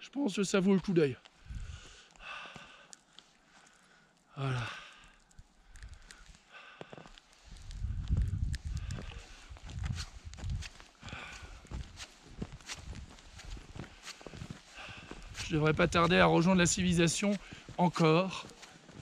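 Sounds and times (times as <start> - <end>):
person breathing hard: 1.4 - 9.8, 11.0 - 11.9, 13.5 - 15.4
microphone rumble: 7.6 - 12.5
boots crunching in snow: 8.8 - 19.0.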